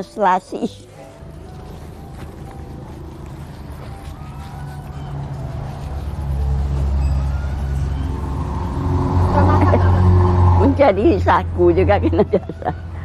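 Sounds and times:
low motor rumble: 1.1s - 13.0s.

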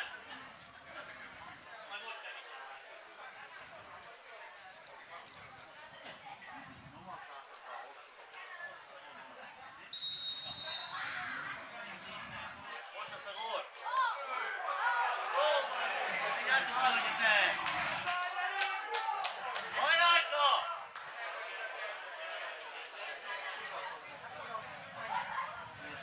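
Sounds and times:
referee's whistle blast: 10.0s - 11.1s
players shouting: 13.8s - 23.1s.

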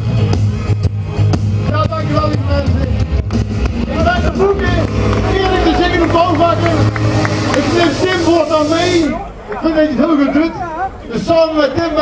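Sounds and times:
man speaking over public address: 1.7s - 3.0s, 3.8s - 12.0s
steady low hum: 3.4s - 9.8s.

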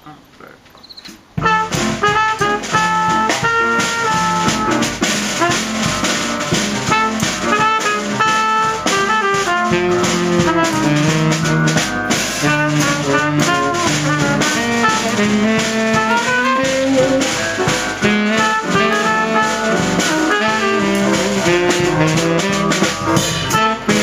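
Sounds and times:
small jazz band playing: 1.2s - 24.0s
trumpet and saxophone holding notes: 1.4s - 24.0s.

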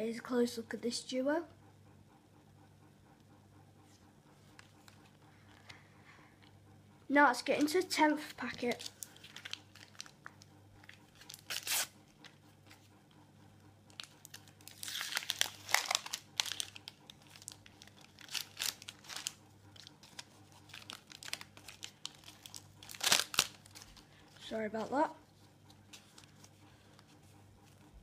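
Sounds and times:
sticker packet tearing and crinkling: 8.5s - 12.0s, 13.9s - 24.1s
stickers shuffling: 13.9s - 24.9s.

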